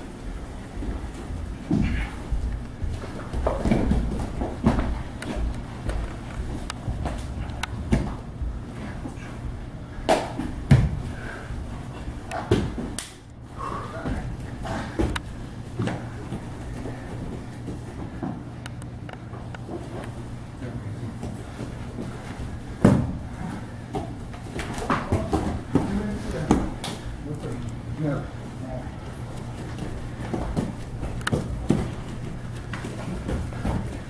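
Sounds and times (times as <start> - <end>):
bodies thumping on gym mat: 0.8 - 9.4, 10.0 - 13.0, 21.2 - 27.2, 29.3 - 34.0.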